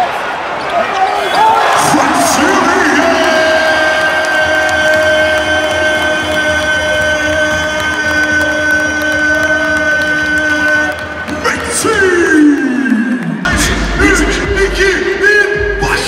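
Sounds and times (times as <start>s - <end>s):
crowd noise: 0.0s - 16.0s.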